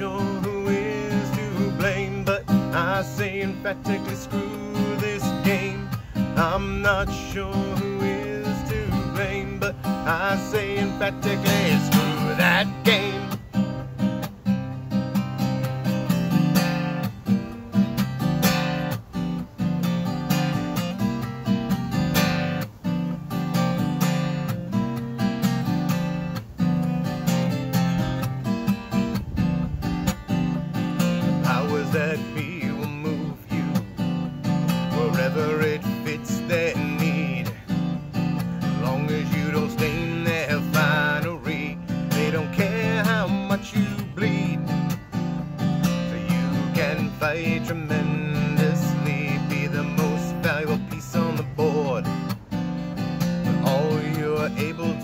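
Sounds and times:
acoustic guitar strummed and picked: 0.0s - 55.0s.

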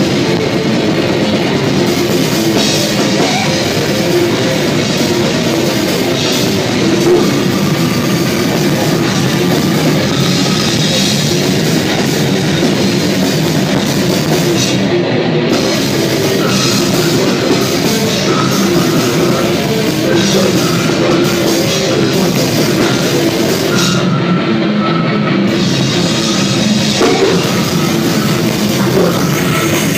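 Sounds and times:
distorted guitars: 0.0s - 29.9s
fast dense drumming: 0.0s - 29.9s.

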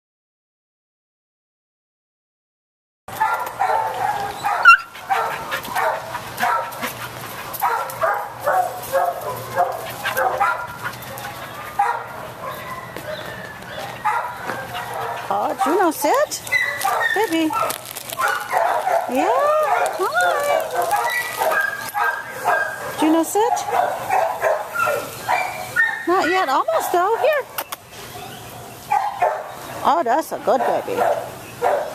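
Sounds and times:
dogs barking: 3.1s - 27.6s, 28.2s - 29.8s, 30.5s - 31.9s
young dog whining and yipping: 3.9s - 5.0s, 16.4s - 22.8s, 24.7s - 26.9s, 28.0s - 29.4s.

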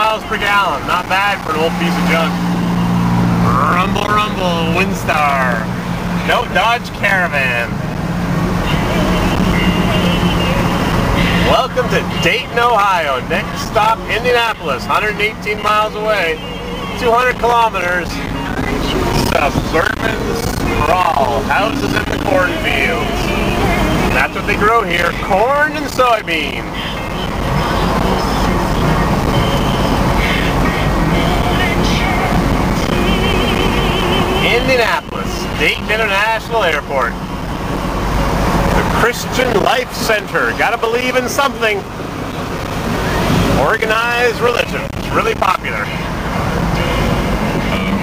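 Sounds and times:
car engine and road noise: 0.0s - 48.0s.

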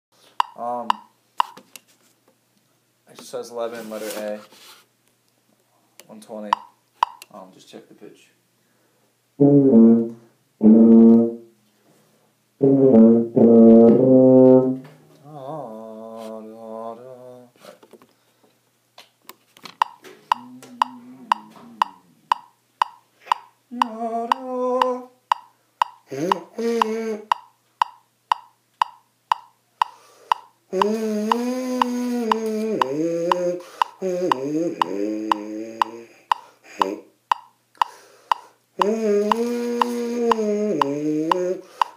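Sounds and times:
metronome clicking: 0.4s - 1.6s, 6.5s - 7.3s, 19.8s - 41.9s
tuba held notes: 9.4s - 11.5s, 12.6s - 14.9s
lips buzzing into brass mouthpiece: 30.8s - 36.0s, 37.8s - 41.9s.

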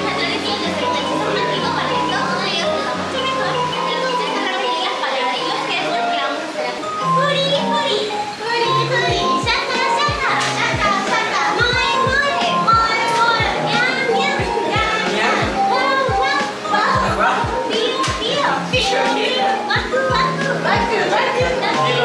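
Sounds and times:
upbeat song with high-pitched vocals: 0.0s - 22.0s.

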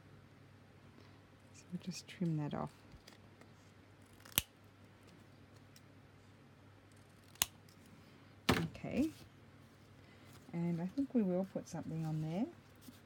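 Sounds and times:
scissors snipping paper: 4.1s - 4.5s, 7.0s - 7.5s.

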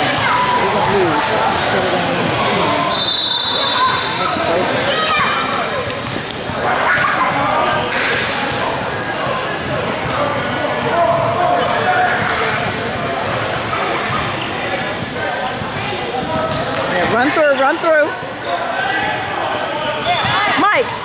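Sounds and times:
voices echoing in gym: 0.0s - 21.0s.

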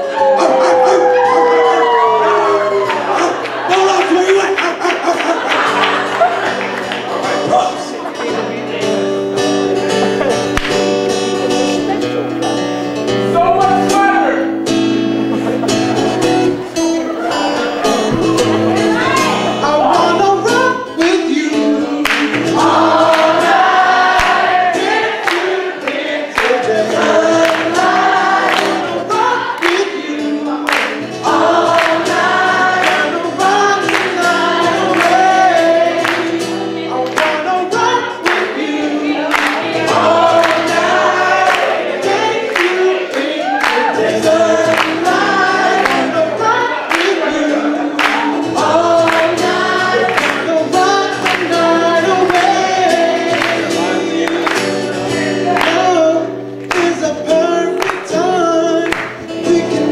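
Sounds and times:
voices singing together: 0.0s - 9.4s, 15.3s - 59.9s
strummed acoustic guitar: 3.0s - 59.9s.

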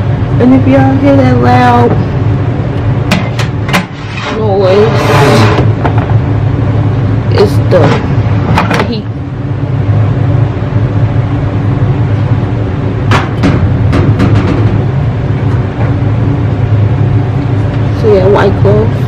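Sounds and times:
machine humming: 0.0s - 19.0s.

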